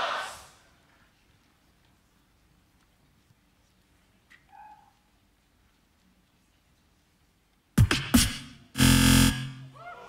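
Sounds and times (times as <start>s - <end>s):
beatboxing vocal hits: 7.8s - 8.5s
buzzing bass note: 7.8s - 9.7s.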